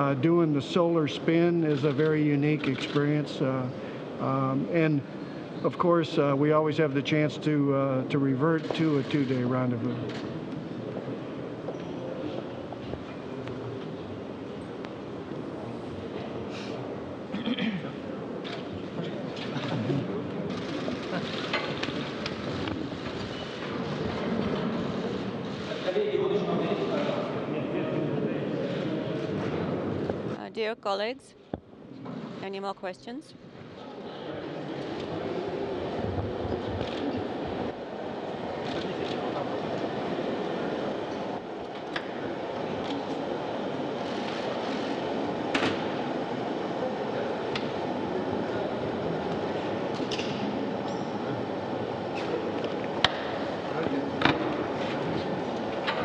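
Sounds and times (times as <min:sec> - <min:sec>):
murmur of voices in a hall: 0:00.0 - 0:56.0
ventilator fan airflow: 0:33.4 - 0:56.0.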